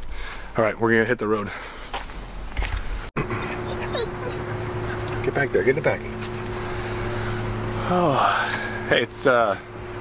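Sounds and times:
low constant hum: 0.1s - 10.0s
vehicle drone from cabin: 3.2s - 10.0s.

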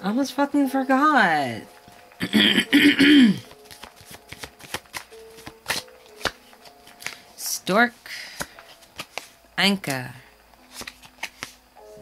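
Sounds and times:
paper cards being handled: 3.4s - 11.6s
card snaps and slides: 3.5s - 7.2s, 8.4s - 9.3s, 10.6s - 11.6s.

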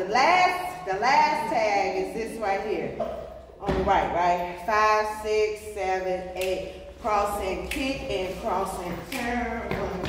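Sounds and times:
gospel song over speakers: 0.0s - 10.0s.

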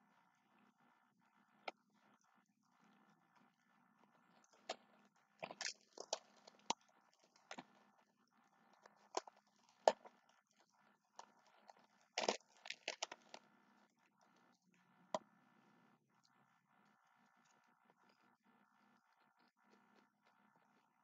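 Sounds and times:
faint steady hum: 0.0s - 21.0s
crunchy food chewing: 0.1s - 21.0s.

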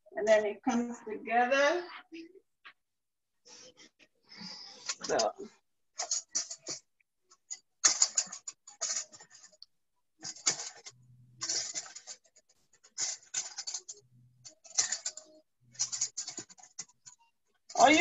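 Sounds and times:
dough scraping against metal bowl: 7.8s - 9.6s, 10.2s - 18.0s.

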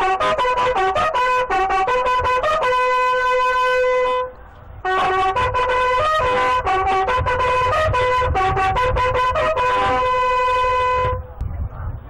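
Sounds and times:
bugle playing slow call: 0.0s - 11.2s.

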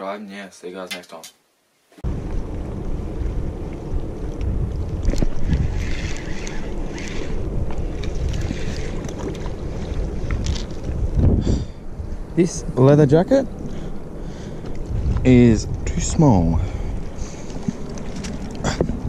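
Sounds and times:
wind buffeting microphone: 2.0s - 19.0s.

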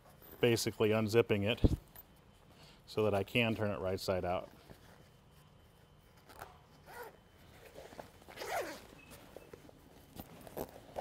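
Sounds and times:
vinyl cover rubbing: 4.8s - 9.6s
zipper being pulled open: 6.3s - 7.2s, 7.8s - 8.9s, 10.2s - 11.0s.

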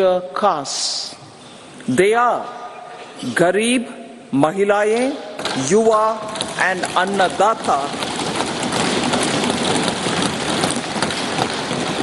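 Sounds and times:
hands thumping wooden desks: 5.4s - 12.0s.

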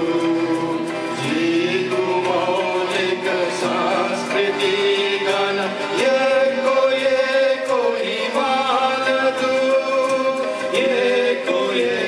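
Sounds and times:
group of men and women singing: 0.0s - 12.0s.

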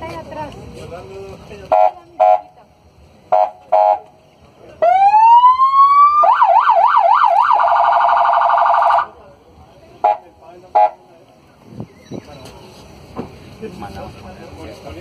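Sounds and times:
electronic police siren: 4.8s - 9.1s.

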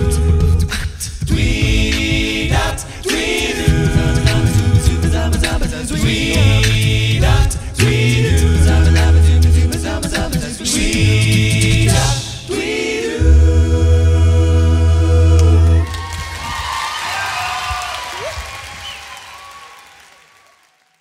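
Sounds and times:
male a cappella group singing: 0.0s - 15.9s
audience applause and cheering: 15.4s - 21.0s.

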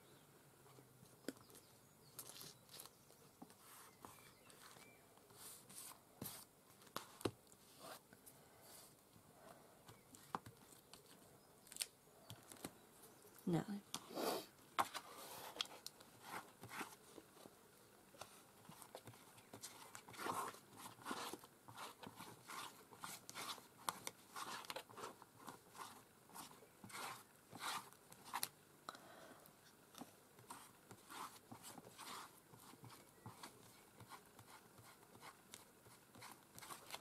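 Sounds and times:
brush spreading gel on paper: 3.5s - 8.0s, 18.3s - 28.5s, 30.4s - 37.0s
paper rustling and scraping: 14.8s - 17.2s, 18.2s - 28.5s, 30.5s - 33.8s.

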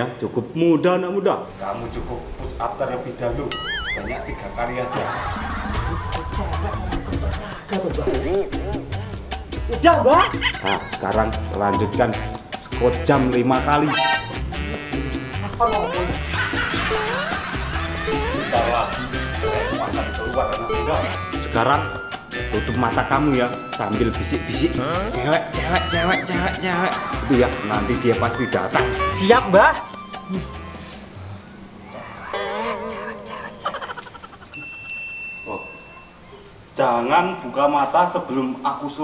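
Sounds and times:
bright ringing chime: 3.5s - 4.4s, 34.6s - 36.2s
warbling wavering tone: 3.5s - 5.4s, 24.8s - 36.2s
upbeat comedic music: 3.5s - 31.1s
snickering laughter: 3.6s - 7.8s, 10.2s - 11.1s, 16.0s - 20.1s, 26.0s - 28.6s, 32.8s - 35.0s.

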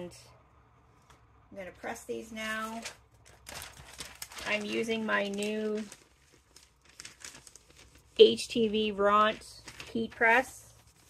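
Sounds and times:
paper sheet rustling: 2.5s - 11.0s.

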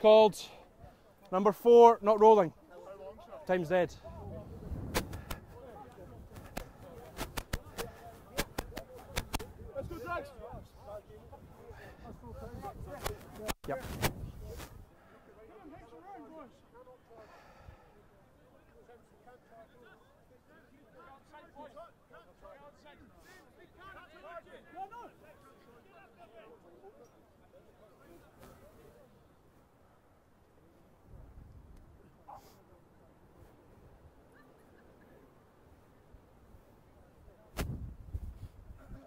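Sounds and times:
faint distant voices: 2.5s - 37.6s
microphone rumble and clicks: 4.1s - 9.8s, 12.4s - 14.9s, 37.5s - 39.0s.

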